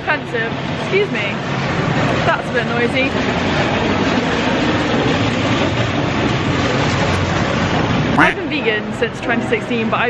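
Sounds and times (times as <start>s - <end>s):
train rumbling in station: 0.0s - 10.0s.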